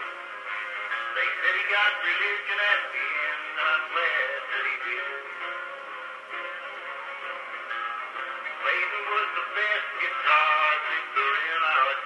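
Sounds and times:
man singing on phonograph: 0.0 - 12.0.

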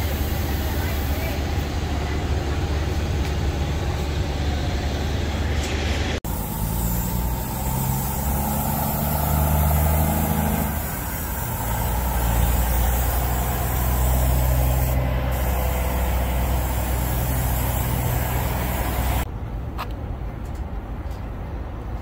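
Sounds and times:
diesel truck engine humming: 0.0 - 19.3.

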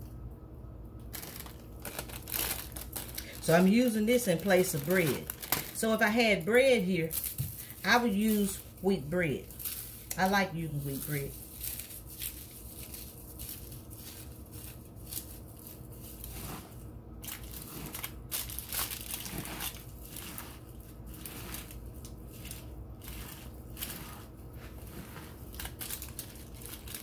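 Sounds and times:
faint steady low hum: 0.0 - 27.0
crackers crunching in meat: 1.0 - 5.8, 10.8 - 27.0
foil crinkling: 1.1 - 27.0.

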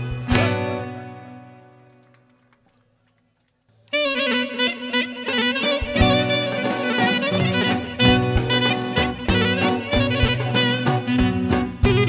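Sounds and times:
clarinet folk melody: 0.0 - 1.6, 3.9 - 12.0
band held note: 3.9 - 12.0
steady musical backing: 4.4 - 12.0.

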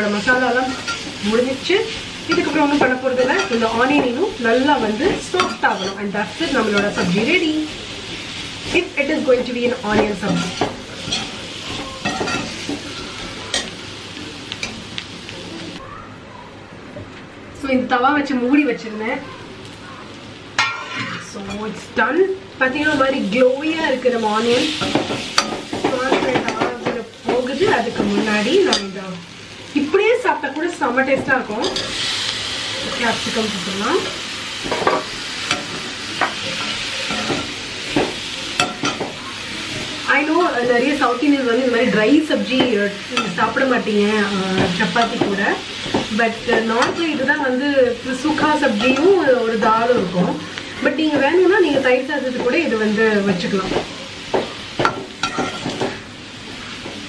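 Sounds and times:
onions sizzling in a pan: 0.0 - 16.8, 17.6 - 57.0
metal spatula scraping a pan: 4.8 - 7.2, 9.9 - 13.7, 20.6 - 21.7, 54.8 - 56.0.

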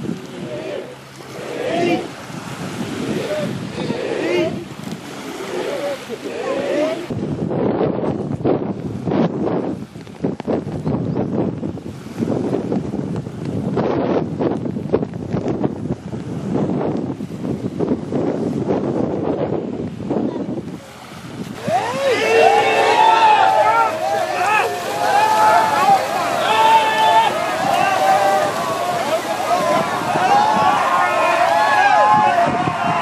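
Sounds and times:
wind buffeting microphone: 0.0 - 33.0
men shouting together: 0.3 - 2.1, 3.1 - 7.1, 21.6 - 33.0.

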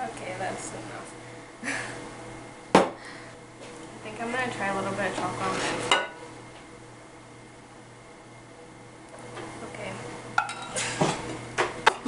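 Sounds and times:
dishes clinking: 5.9 - 6.2, 10.4 - 11.2.

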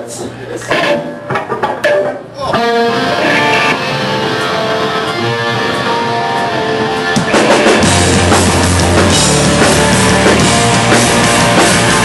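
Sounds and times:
electric guitar strumming: 0.7 - 12.0.

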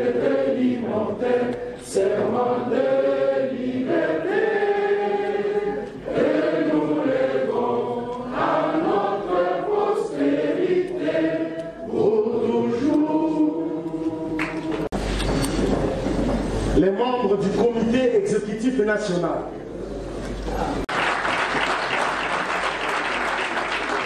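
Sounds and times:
group of adults singing: 0.0 - 15.0.

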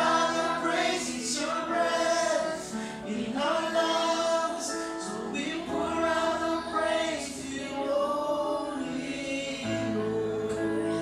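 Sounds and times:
group singing a worship song: 0.0 - 11.0.

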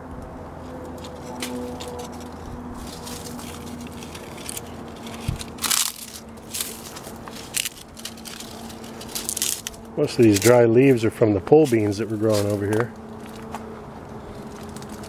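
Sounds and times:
leaves and branches rustling: 0.6 - 15.0.

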